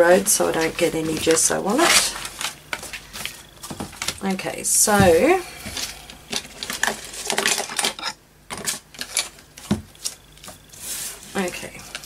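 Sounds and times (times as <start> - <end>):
plastic sheet rustling and crinkling: 0.0 - 12.0.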